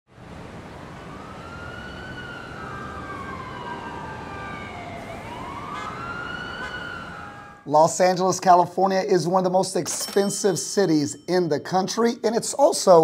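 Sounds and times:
city traffic hum: 0:00.1 - 0:13.0
emergency vehicle siren wailing: 0:00.3 - 0:07.7.

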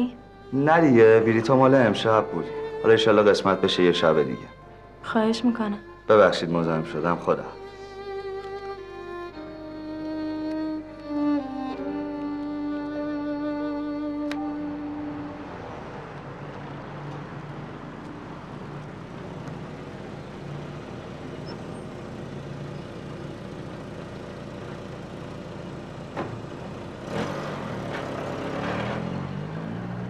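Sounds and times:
car engine idling: 0:00.0 - 0:28.8
street traffic: 0:00.0 - 0:30.0.

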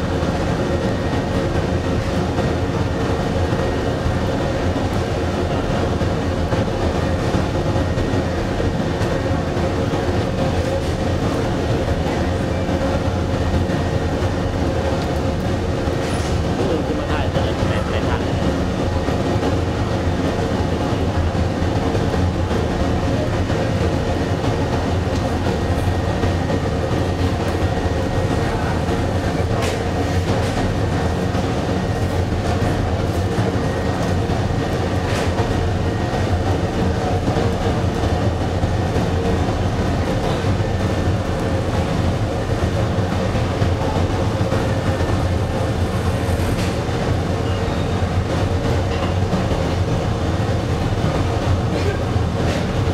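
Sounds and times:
furnace fire rumbling: 0:00.0 - 0:52.9.

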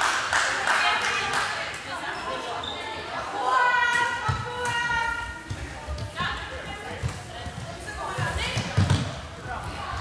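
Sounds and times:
voices calling in a hall: 0:00.0 - 0:10.0.

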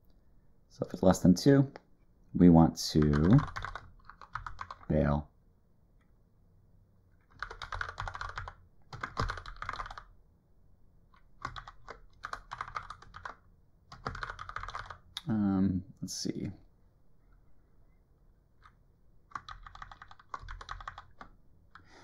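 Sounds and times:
typing on computer keyboard: 0:02.9 - 0:04.9, 0:07.2 - 0:10.1, 0:11.2 - 0:15.2, 0:18.6 - 0:21.9.

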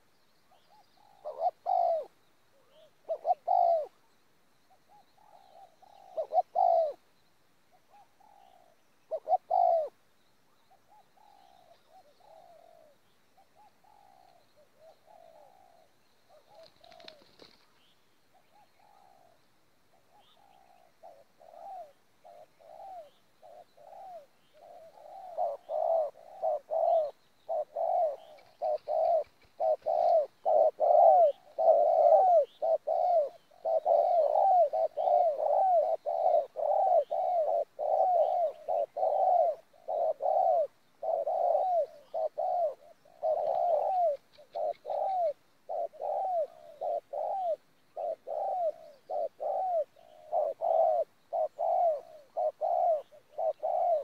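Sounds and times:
doves cooing: 0:00.0 - 0:04.0, 0:04.7 - 0:07.1, 0:07.7 - 0:10.0, 0:10.6 - 0:54.0.

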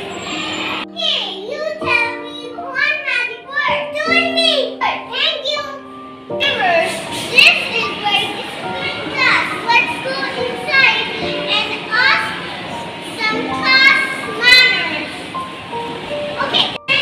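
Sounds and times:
background music with held notes: 0:00.0 - 0:17.0
children talking and calling out: 0:00.0 - 0:17.0.

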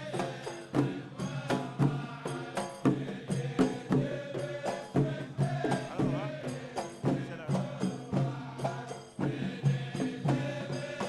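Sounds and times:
hand drums beating: 0:00.0 - 0:11.0
voices chanting together: 0:00.0 - 0:11.0.

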